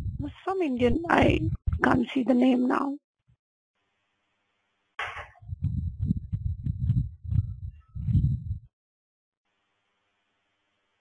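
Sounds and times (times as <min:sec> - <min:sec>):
microphone handling thumps: 0:00.0 - 0:02.1, 0:05.0 - 0:08.7.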